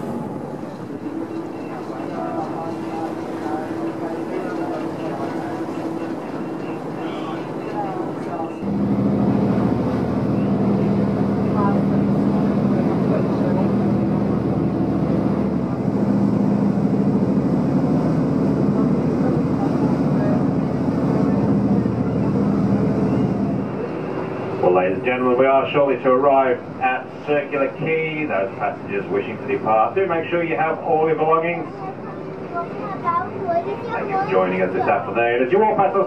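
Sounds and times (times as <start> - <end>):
ferry engines droning: 0.0 - 36.0.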